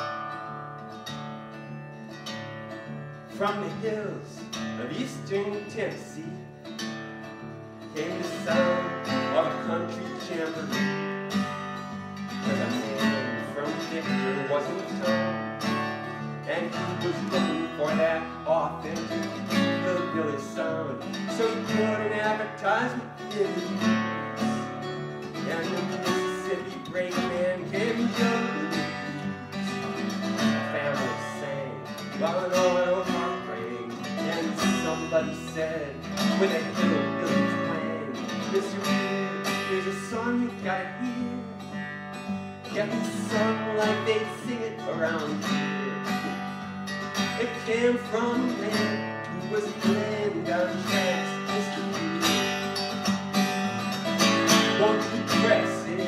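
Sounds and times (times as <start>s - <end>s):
acoustic guitar picking: 0.0s - 56.0s.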